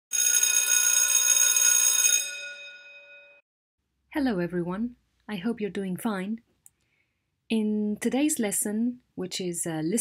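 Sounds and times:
bell ringing: 0.1 - 3.4.

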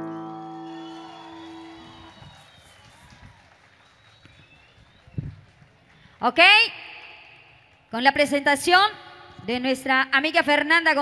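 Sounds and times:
faint stage ambience: 0.0 - 11.0.

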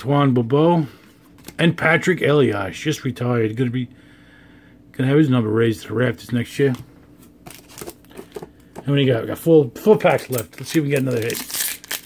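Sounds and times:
card pack rustling: 7.2 - 8.6, 10.0 - 12.0.

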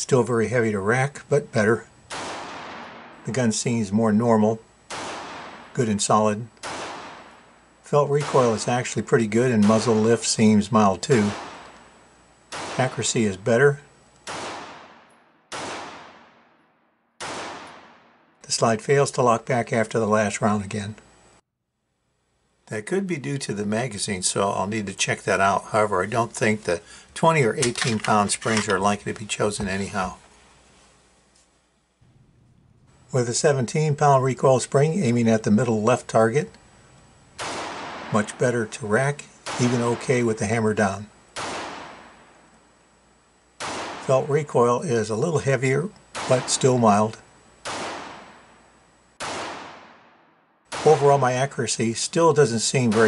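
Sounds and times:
pistol shot echoing indoors: 2.1 - 3.3, 4.9 - 5.8, 6.6 - 7.6, 9.6 - 10.3, 11.0 - 13.2, 14.2 - 18.4, 37.4 - 38.4, 39.4 - 40.3, 41.4 - 42.5, 43.6 - 44.1, 46.1 - 46.8, 47.6 - 51.3.

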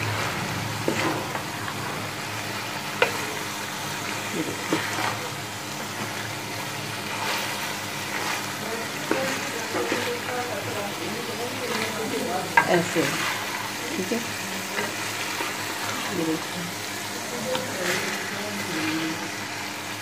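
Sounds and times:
food sizzling in oil: 0.0 - 20.0.

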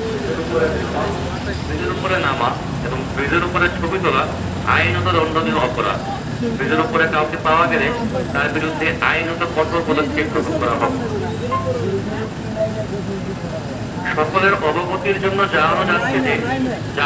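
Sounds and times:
bus engine humming: 0.0 - 17.0
voices talking: 0.0 - 17.0.

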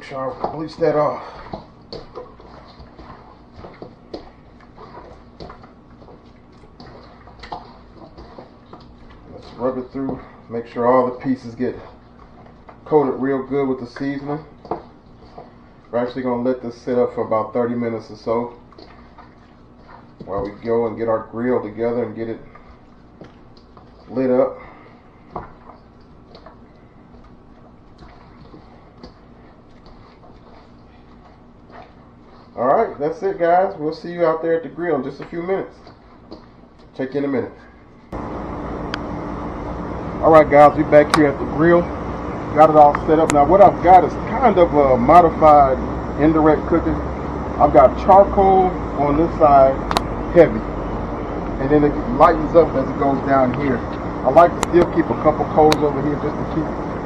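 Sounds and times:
raw meat slapping and rustling: 0.0 - 16.4, 17.6 - 34.2
wet squishes of chicken: 0.0 - 37.2.

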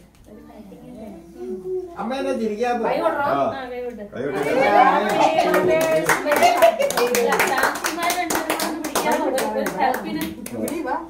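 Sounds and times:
group clapping: 4.4 - 11.0.

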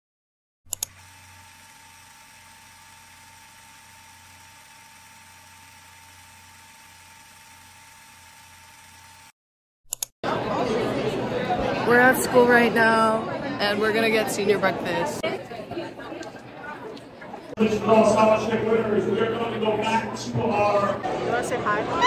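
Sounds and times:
clicks: 0.7 - 1.0, 9.9 - 10.1
chatter of many voices: 10.2 - 22.0.

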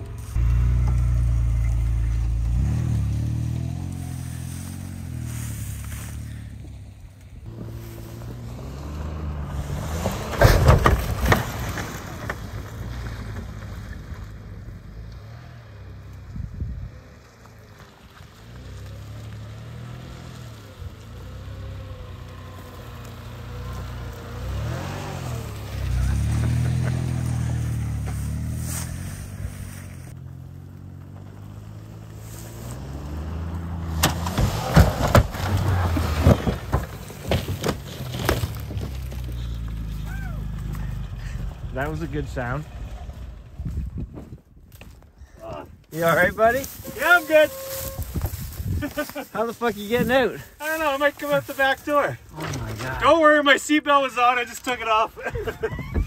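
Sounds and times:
car engine revving: 0.0 - 16.1, 16.9 - 43.8.

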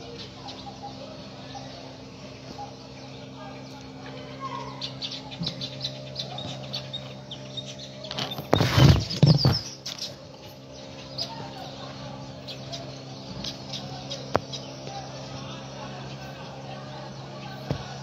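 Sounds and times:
small birds chirping: 0.0 - 18.0
steady low hum: 0.0 - 18.0.

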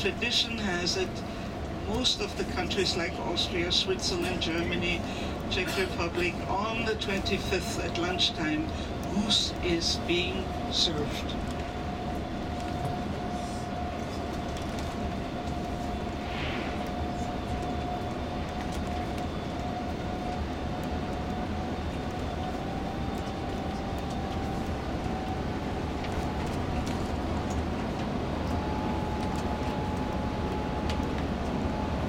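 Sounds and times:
bus engine and road rumble: 0.0 - 32.0
thin whine: 15.1 - 32.0.

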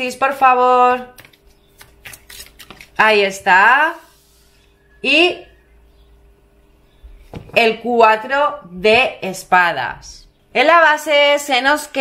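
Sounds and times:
cards being shuffled: 1.2 - 3.0.

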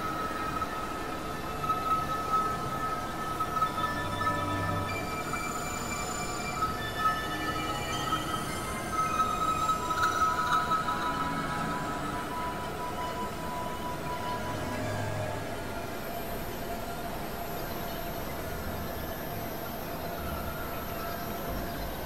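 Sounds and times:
noisy hiss: 0.0 - 22.0.

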